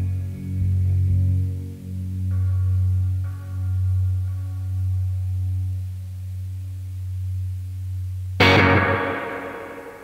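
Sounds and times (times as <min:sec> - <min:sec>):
steady low drone: 0:00.0 - 0:10.0
distorted electric guitar chord: 0:08.4 - 0:10.0.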